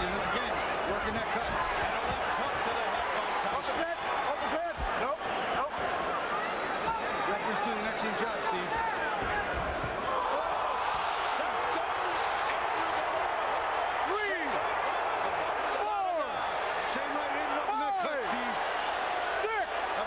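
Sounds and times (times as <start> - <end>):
crowd shouting and yelling: 0.0 - 20.0.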